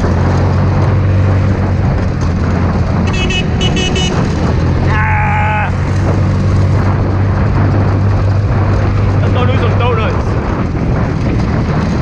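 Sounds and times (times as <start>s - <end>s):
go-kart engine running: 0.0s - 12.0s.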